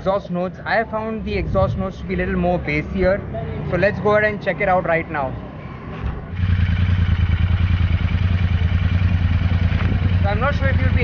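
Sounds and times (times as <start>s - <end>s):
motorcycle engine idling: 6.3s - 11.0s.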